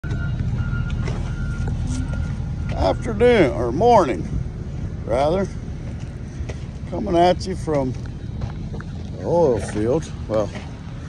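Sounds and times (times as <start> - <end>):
high-pitched beeps: 0.0 - 3.6
heavy vehicle engine rumble: 0.0 - 11.0.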